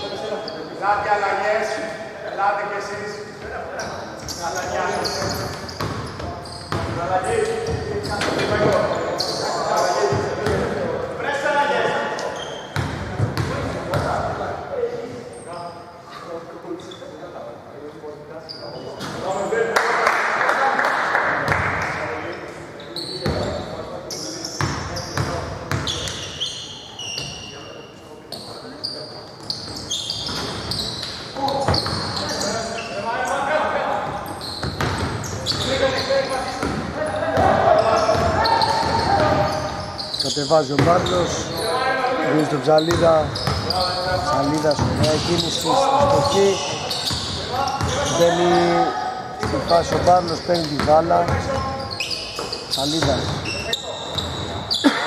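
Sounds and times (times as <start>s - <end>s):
people talking: 0.0s - 12.4s, 35.2s - 54.2s.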